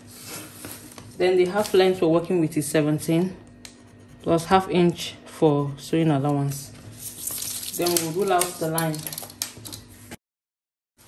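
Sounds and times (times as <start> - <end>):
paper rustling: 0.1 - 1.9, 6.8 - 10.1.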